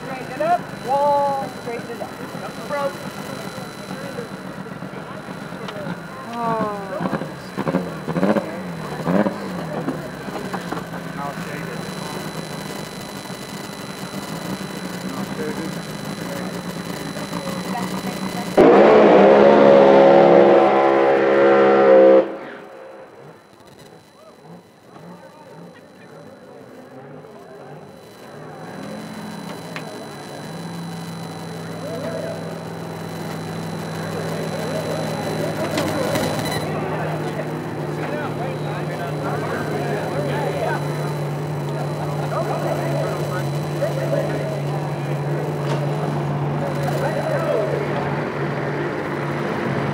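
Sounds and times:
low engine drone: 0.0 - 49.9
race car engine at high revs: 0.0 - 49.9.

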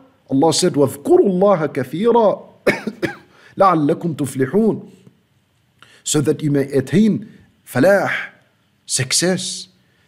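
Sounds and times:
man speaking: 0.0 - 2.6, 3.6 - 5.0, 6.0 - 9.8
cough: 2.6 - 3.3.

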